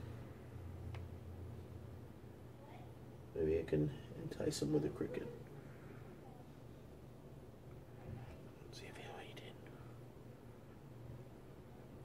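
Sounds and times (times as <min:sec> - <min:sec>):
faint low hum: 0:00.0 - 0:12.0
man whispering: 0:08.6 - 0:09.9.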